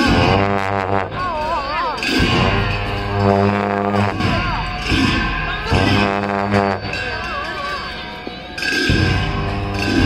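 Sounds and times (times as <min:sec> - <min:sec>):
long horns low notes: 0:00.0 - 0:07.2, 0:08.8 - 0:10.0
percussion strikes: 0:00.0 - 0:10.0.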